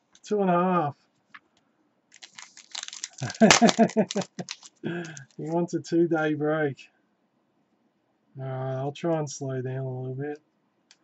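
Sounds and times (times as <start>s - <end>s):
foil pack crinkling and tearing: 2.2s - 5.6s
man laughing: 3.1s - 5.3s.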